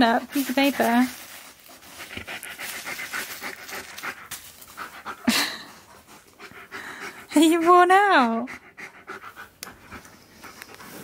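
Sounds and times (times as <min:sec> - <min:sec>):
dog panting: 0:00.4 - 0:11.0.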